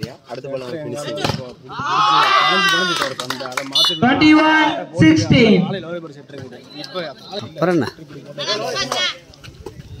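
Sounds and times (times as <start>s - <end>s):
people shouting: 1.7s - 3.0s.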